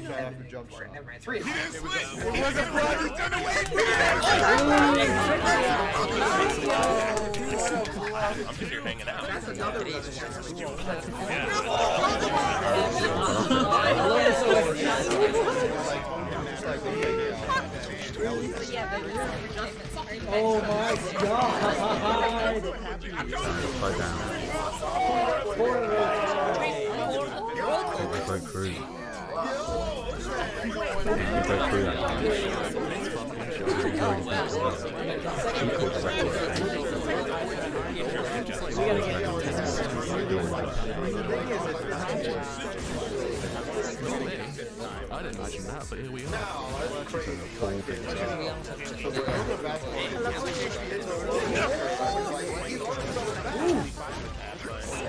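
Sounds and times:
many voices talking and laughing: 0.0 - 55.0.

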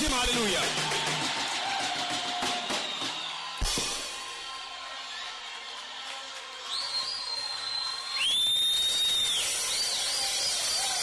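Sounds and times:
high-pitched whistling: 6.7 - 11.0.

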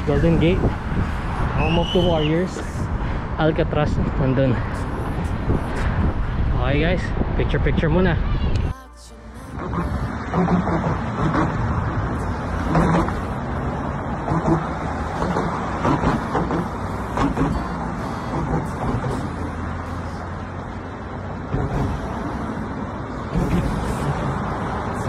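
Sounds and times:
road traffic passing close: 0.0 - 25.0.

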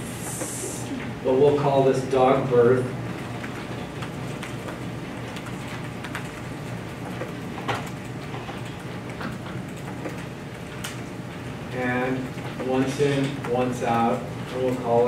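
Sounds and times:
ventilation hiss and hum: 0.0 - 15.0.

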